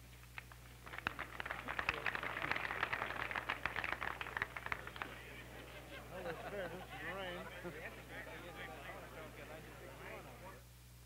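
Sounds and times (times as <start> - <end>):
audience applauding: 0.4 - 10.0.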